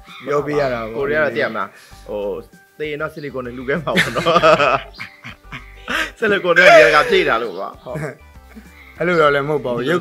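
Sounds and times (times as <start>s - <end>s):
people laughing: 3.9s - 6.2s, 6.8s - 8.2s.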